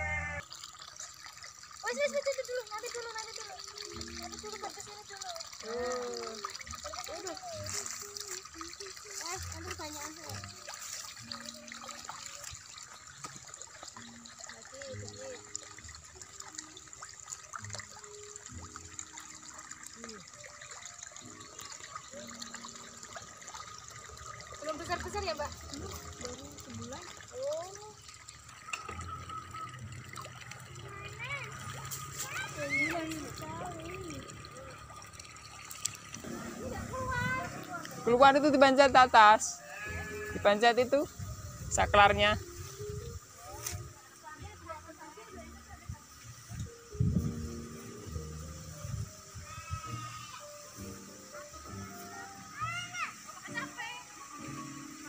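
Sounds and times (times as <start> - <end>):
pond water trickling and splashing: 0.0 - 55.0.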